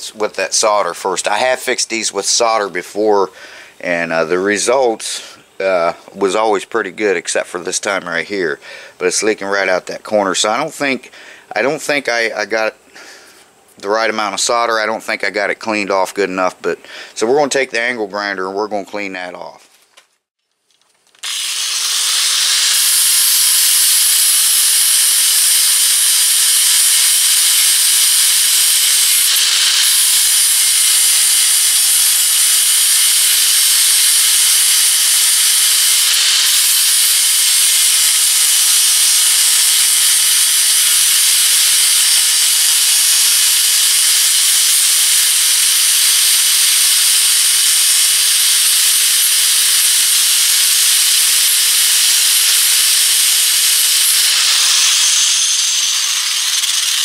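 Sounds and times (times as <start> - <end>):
angle grinder grinding metal: 21.2 - 57.0.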